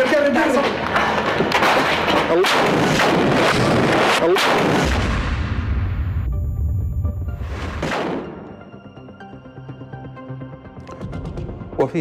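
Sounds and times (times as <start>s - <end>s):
gunfire and explosions: 0.0s - 8.6s
sharp gunshot reports: 2.4s - 5.9s, 7.7s - 8.5s.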